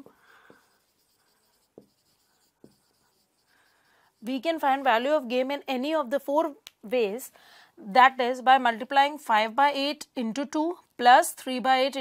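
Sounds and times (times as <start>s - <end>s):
marker pen strokes on whiteboard: 0.0s - 5.4s.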